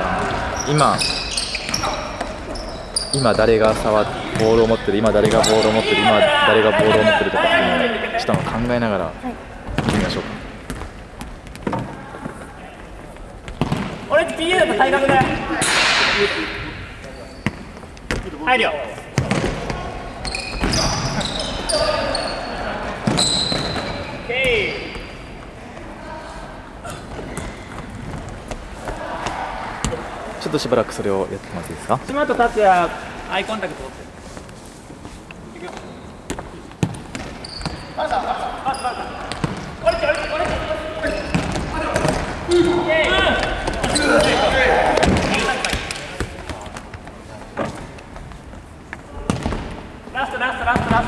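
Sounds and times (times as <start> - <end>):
shoes squeaking on floor: 0.0 - 8.5, 16.8 - 25.6, 26.8 - 29.0, 33.4 - 49.4
short high squeaks: 0.6 - 3.4, 20.2 - 22.6, 23.2 - 25.2
players calling out: 19.3 - 31.2, 37.4 - 46.7.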